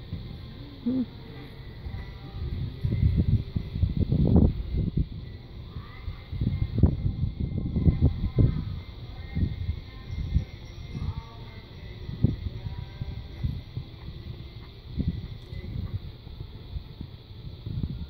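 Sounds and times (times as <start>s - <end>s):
wind buffeting microphone: 1.7s - 18.0s.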